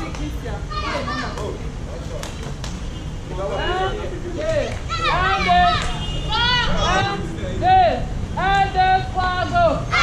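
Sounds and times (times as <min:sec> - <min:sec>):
children calling out: 0:04.9 - 0:07.0.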